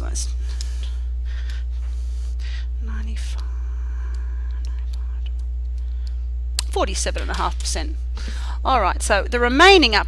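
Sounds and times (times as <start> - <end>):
low electrical hum: 0.0 - 10.0
soft breaths: 0.4 - 2.8.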